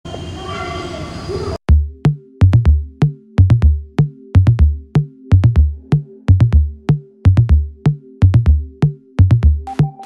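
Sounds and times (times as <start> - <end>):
street noise: 0.0 - 1.6
electronic drum hit with bass: 1.7 - 6.7.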